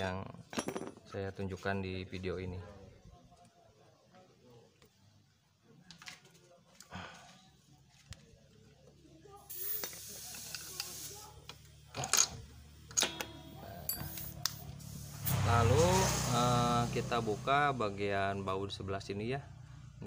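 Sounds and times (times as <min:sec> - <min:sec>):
hissing noise: 0:09.5 - 0:11.7, 0:13.9 - 0:18.2
small clicks and metallic knocks: 0:09.8 - 0:14.6
man speaking: 0:15.3 - 0:19.5.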